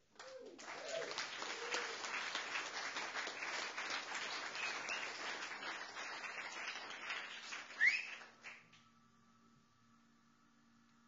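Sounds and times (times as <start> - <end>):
audience applauding: 0.2 - 8.7
rising whistle from crowd: 4.4 - 5.4, 6.4 - 10.6.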